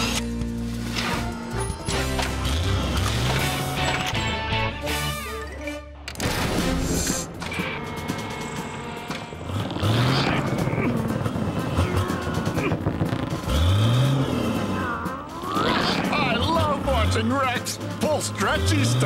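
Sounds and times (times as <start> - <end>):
cartoon background music: 0.0 - 19.0.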